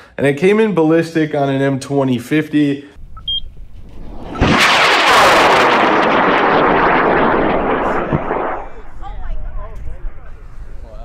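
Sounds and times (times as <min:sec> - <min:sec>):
rocket motor loud rushing: 0:03.7 - 0:09.1.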